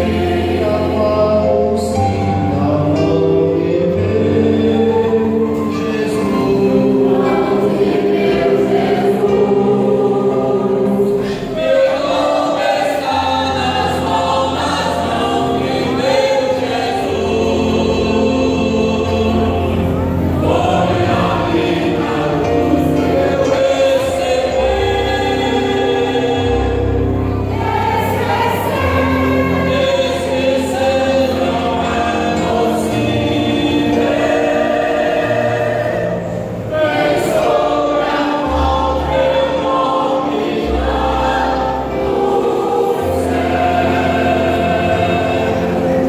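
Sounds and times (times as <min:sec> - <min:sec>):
mixed choir singing: 0:00.0 - 0:46.0.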